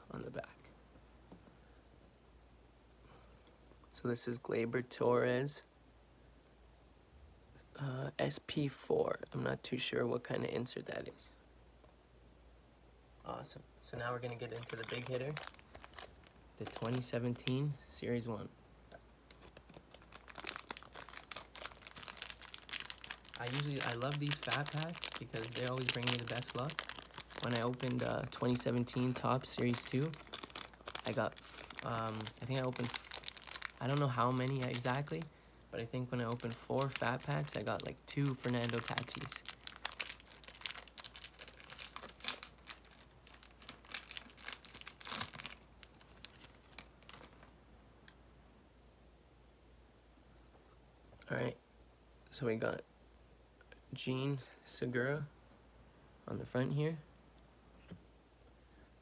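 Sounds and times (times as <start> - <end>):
plastic wrapper crinkling: 14.0 - 17.8, 19.3 - 35.3, 35.9 - 47.6.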